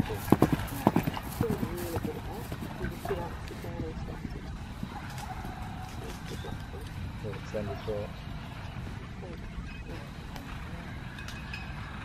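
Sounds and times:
people talking: 0.0 - 4.5, 6.0 - 8.1
horse hoofbeats on grass: 0.0 - 6.6.

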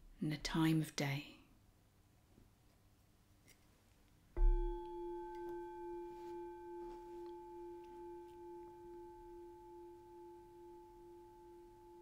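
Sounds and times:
meditation bell ringing: 4.4 - 12.0.

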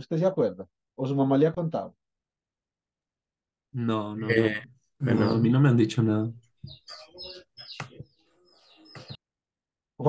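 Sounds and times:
faint bird chirps: 6.5 - 9.2.

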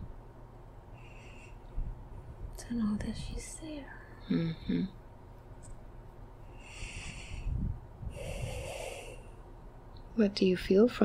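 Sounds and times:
woman breathing through nose: 6.5 - 9.4.

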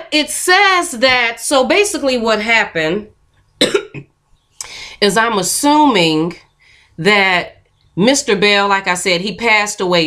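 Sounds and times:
woman coughing: 3.6 - 4.0
woman breathing in: 6.6 - 7.0.

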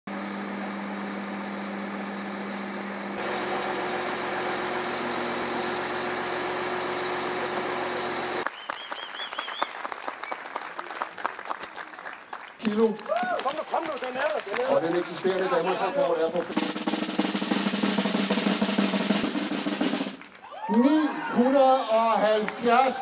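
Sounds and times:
truck engine running: 0.1 - 8.4
crowd clapping: 7.2 - 18.0, 19.6 - 23.0.

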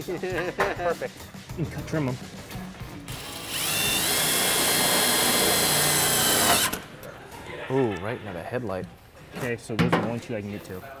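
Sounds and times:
cordless drill whining: 3.1 - 6.9.

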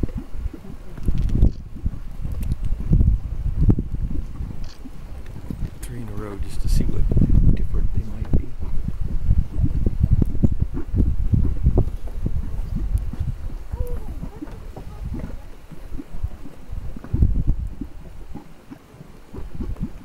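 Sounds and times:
mud bubbling and plopping: 0.0 - 20.0.

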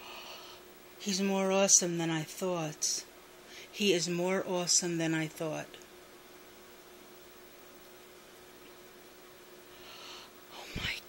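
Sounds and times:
woman breathing: 0.0 - 0.7, 3.4 - 3.8, 9.7 - 11.0
faint steady hum: 0.0 - 11.0.

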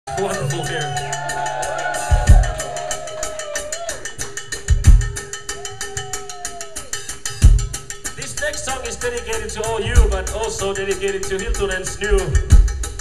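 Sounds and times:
bass drum hits: 2.1 - 2.6, 4.7 - 5.2, 7.4 - 7.8, 10.0 - 10.4, 12.4 - 13.0.

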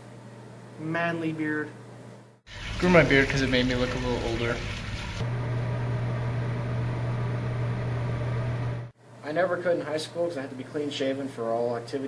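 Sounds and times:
low machine hum: 1.8 - 9.0.

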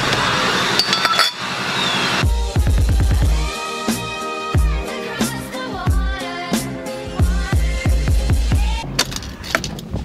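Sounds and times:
metal objects clinking: 0.8 - 1.4.

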